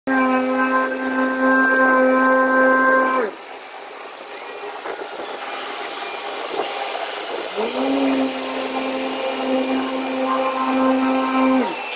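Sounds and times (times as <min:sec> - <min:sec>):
loud horn-like tone: 0:00.1 - 0:03.4, 0:07.6 - 0:11.9
paving machinery running: 0:03.4 - 0:11.9.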